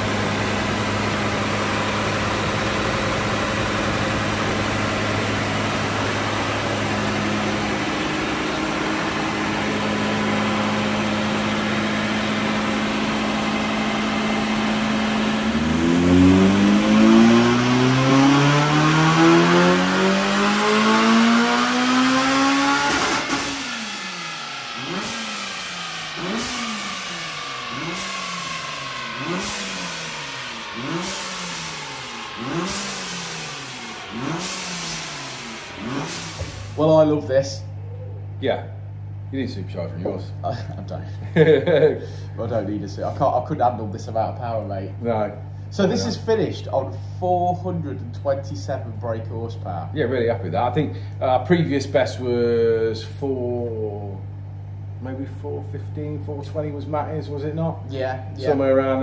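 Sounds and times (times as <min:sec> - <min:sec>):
car engine revving on dyno: 0:00.0 - 0:37.2.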